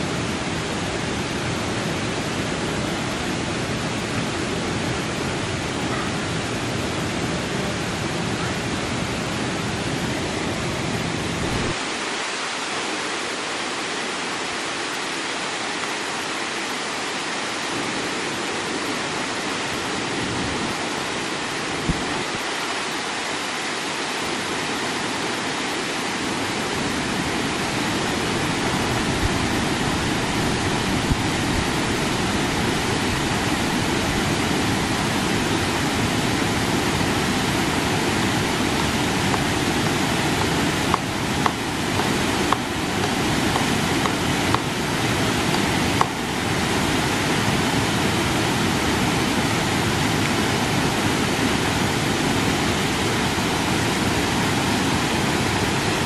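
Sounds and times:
waterfall pouring into pool: 11.7 - 56.0.

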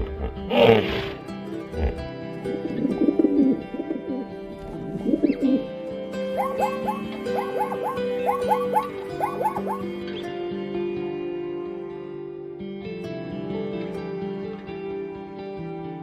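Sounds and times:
pigeon cooing: 0.0 - 10.0
background music: 0.0 - 16.0
short chirping calls: 6.2 - 10.0.

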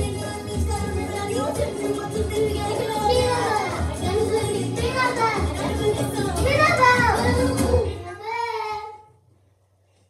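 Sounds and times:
recorded song with bass beat: 0.0 - 7.9
children singing and calling out: 0.0 - 9.1.

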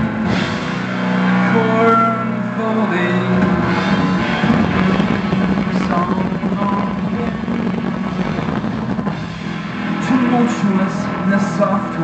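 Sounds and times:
distorted electric guitar: 0.0 - 12.0
keyboard drone: 0.0 - 12.0
held low note: 1.2 - 11.2.

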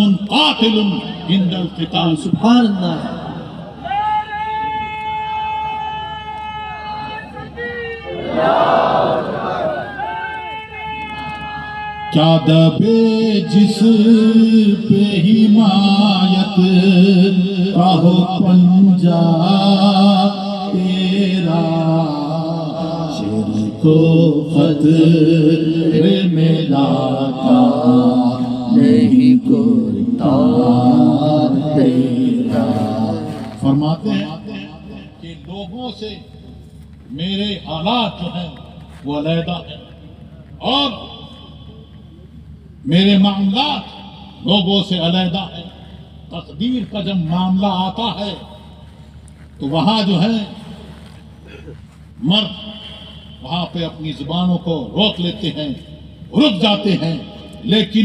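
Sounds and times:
man chanting a long high note: 9.7 - 35.8.

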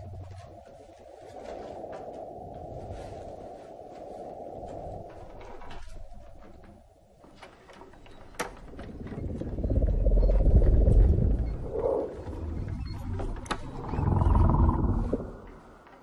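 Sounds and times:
deep growling rumble: 0.0 - 0.6, 8.6 - 15.8.

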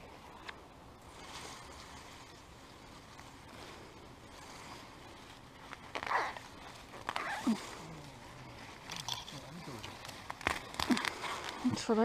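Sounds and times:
faint steady rustling: 0.0 - 12.0.

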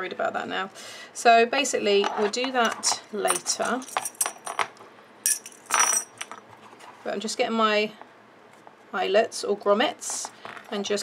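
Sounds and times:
metal eyelets rattling in plastic box: 2.8 - 4.7, 5.3 - 6.4.

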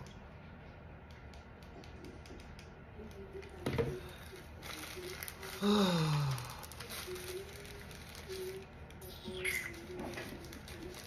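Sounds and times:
plastic packaging rustling: 3.4 - 11.0.

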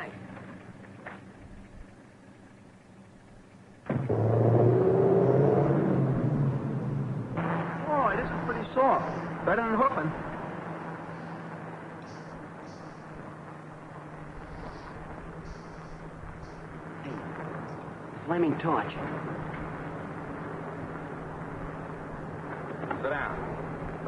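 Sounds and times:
car engine driving off: 3.8 - 18.1.

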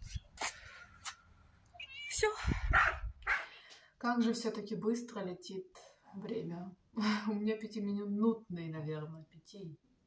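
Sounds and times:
cat meowing: 1.7 - 3.0.

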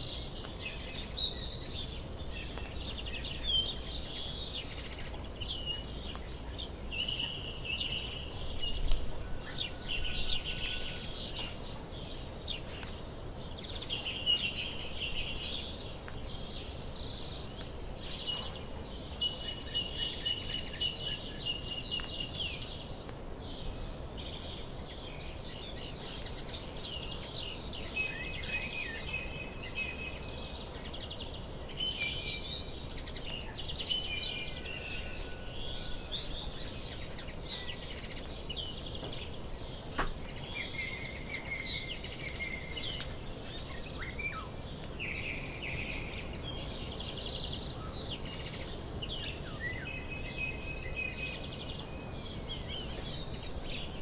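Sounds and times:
small birds chirping and singing: 0.0 - 54.0.

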